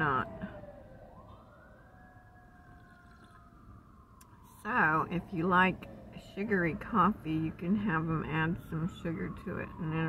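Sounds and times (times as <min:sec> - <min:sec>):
distant siren wailing: 0:00.0 - 0:10.0
low traffic rumble: 0:00.0 - 0:10.0.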